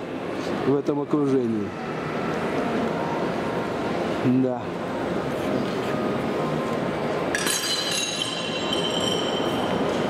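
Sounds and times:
busy mall hubbub: 0.0 - 10.0
bright ringing chime: 7.4 - 10.0.

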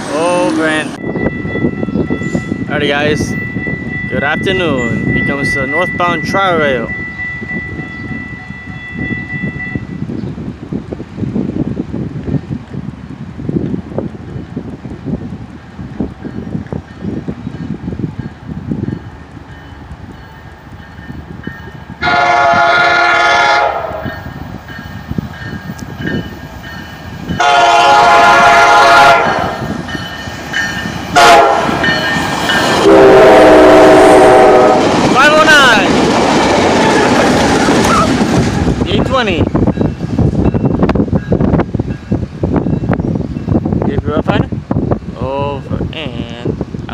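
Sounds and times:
train rumble: 0.0 - 46.9
train horn blasts: 22.0 - 24.2, 27.4 - 29.6, 31.1 - 31.9, 32.8 - 34.9.

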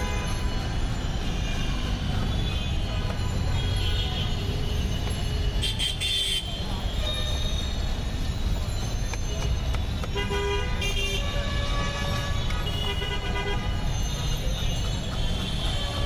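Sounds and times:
street traffic rumble: 0.0 - 16.0.

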